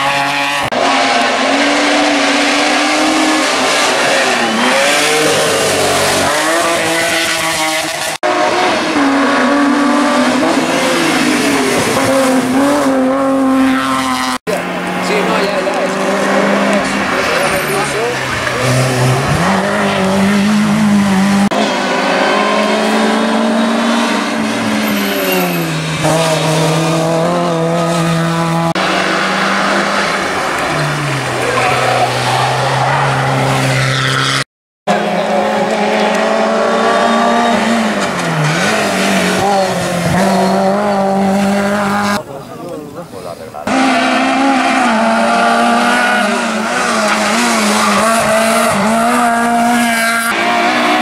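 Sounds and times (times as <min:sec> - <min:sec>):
race car engines at high revs: 0:00.0 - 0:42.2, 0:43.6 - 0:51.0.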